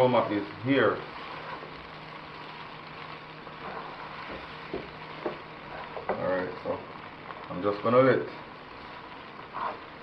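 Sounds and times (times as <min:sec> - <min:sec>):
vegetables sizzling in a wok: 0:00.0 - 0:10.0.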